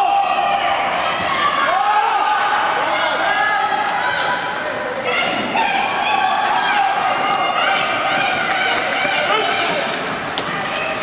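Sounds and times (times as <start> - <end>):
voices calling and shouting: 0.7 - 11.0.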